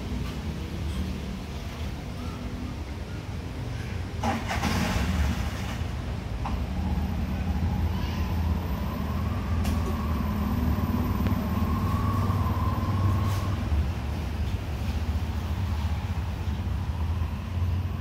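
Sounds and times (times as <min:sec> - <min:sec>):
faint engine whine: 0:00.0 - 0:18.0
vehicle engine rumbling: 0:00.0 - 0:18.0.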